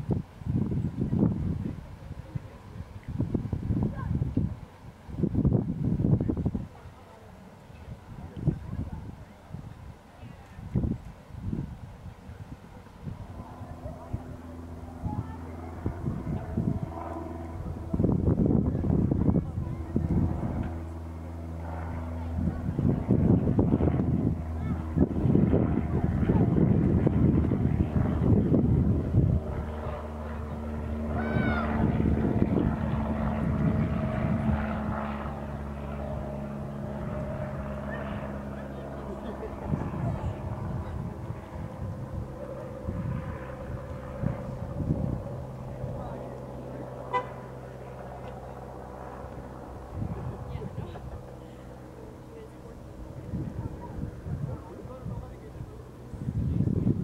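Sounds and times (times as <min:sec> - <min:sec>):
wind buffeting microphone: 0:00.0 - 0:07.0, 0:07.6 - 0:57.0
low mechanical drone: 0:00.0 - 0:57.0
steady low hum: 0:00.0 - 0:57.0
low rumble: 0:10.7 - 0:57.0.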